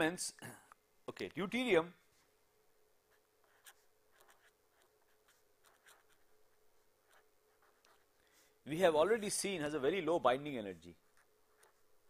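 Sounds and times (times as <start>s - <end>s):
marker writing on paper: 3.1s - 8.2s, 11.0s - 11.9s.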